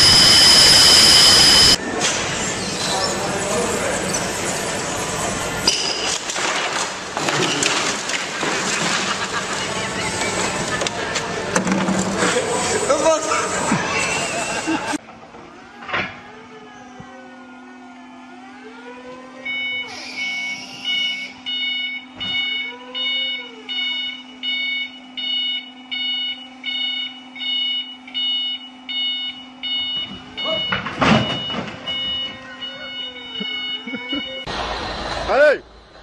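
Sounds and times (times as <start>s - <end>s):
reversing alarm beeping: 0.0s - 3.0s, 16.3s - 34.5s
motor hum with gliding whines: 0.0s - 5.6s, 12.5s - 30.8s, 31.9s - 36.0s.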